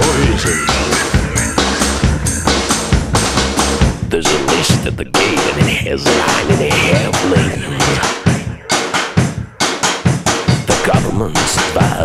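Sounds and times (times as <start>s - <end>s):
person singing: 0.0s - 1.7s, 4.2s - 8.9s
bass drum and snare beat: 0.0s - 12.0s.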